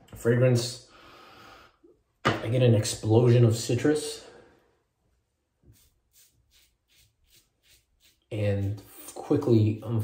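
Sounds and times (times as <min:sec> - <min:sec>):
razor scraping stubble: 0:05.7 - 0:09.2.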